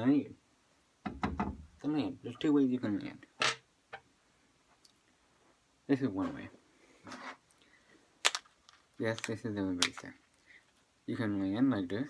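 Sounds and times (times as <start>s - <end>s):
soft rustle: 4.3s - 11.8s.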